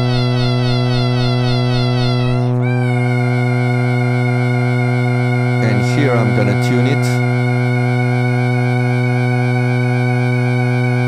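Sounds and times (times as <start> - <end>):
low sawtooth synth drone: 0.0 - 11.0.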